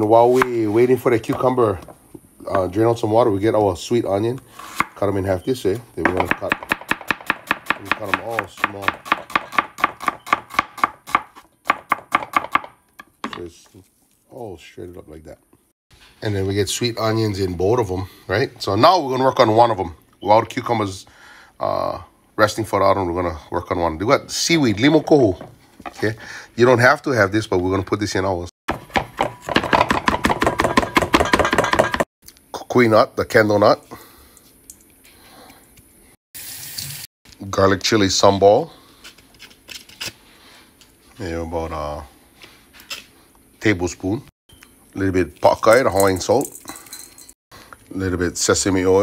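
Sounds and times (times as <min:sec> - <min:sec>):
knife chopping on cutting board: 0:06.1 - 0:12.7.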